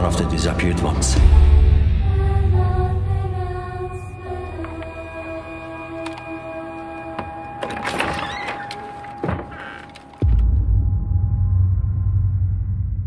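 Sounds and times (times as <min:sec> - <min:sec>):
tense film score held tones: 0:00.0 - 0:13.0.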